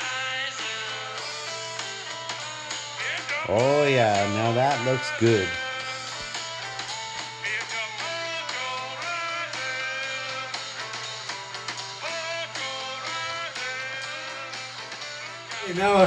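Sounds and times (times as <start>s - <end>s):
guitar music: 3.3s - 7.2s, 15.1s - 16.0s.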